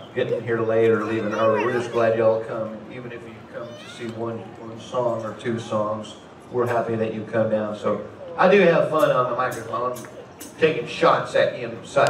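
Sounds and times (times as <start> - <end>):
man's voice over pa: 0.2 - 4.6.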